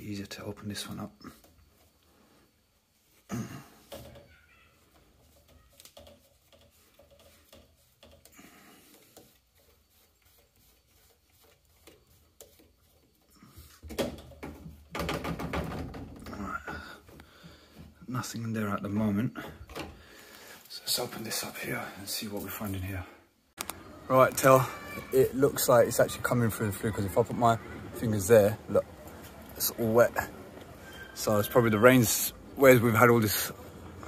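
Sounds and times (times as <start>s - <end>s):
pipework handling: 3.0s - 18.0s
plastic rubbing: 3.0s - 18.0s.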